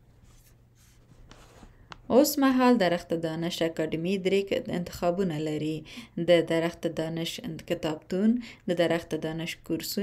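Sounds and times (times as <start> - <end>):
soft scratchy rustles: 0.0 - 1.9.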